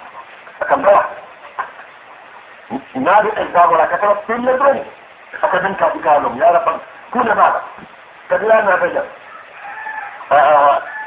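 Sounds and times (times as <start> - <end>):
low steady hiss: 0.0 - 11.0
man preaching: 0.6 - 1.2, 2.7 - 9.2, 10.3 - 10.9.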